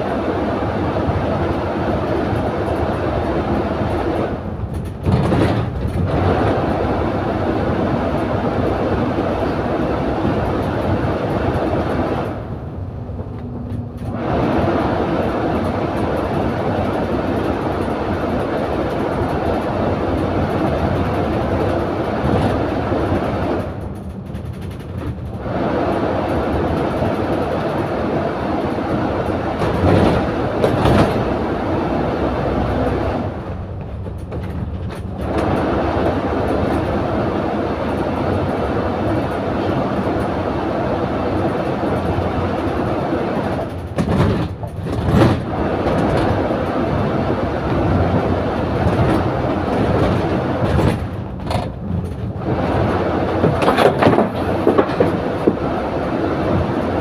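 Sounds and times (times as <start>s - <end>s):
bus engine and road noise: 0.0s - 57.0s.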